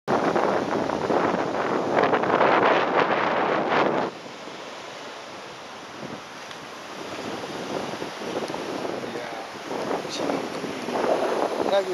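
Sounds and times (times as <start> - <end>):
wind rushing over microphone: 0.1 - 11.9
small surf breaking on beach: 0.2 - 11.9.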